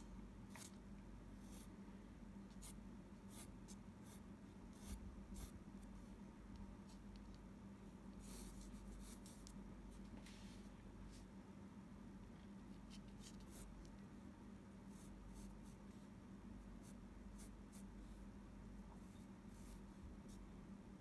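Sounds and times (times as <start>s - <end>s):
low steady hum: 0.0s - 21.0s
pencil scratching on paper: 2.5s - 5.6s, 8.2s - 9.5s.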